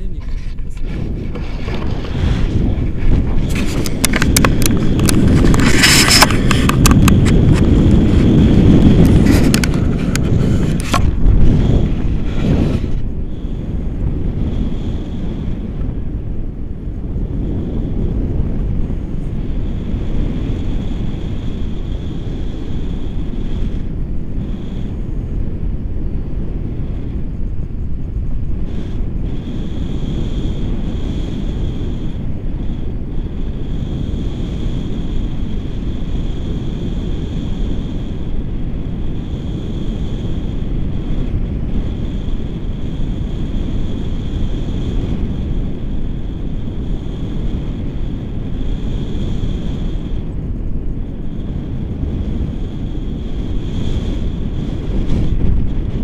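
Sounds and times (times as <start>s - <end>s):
wind buffeting crackles: 0.0s - 56.0s
wind rushing over microphone: 0.0s - 56.0s.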